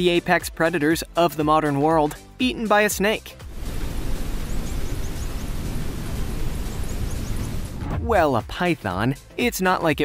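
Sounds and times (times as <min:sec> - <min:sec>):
steady rushing noise with low rumble: 0:03.5 - 0:08.2.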